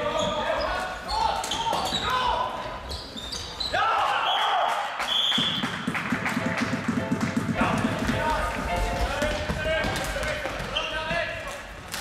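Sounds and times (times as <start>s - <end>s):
people shouting and cheering: 3.7s - 5.7s.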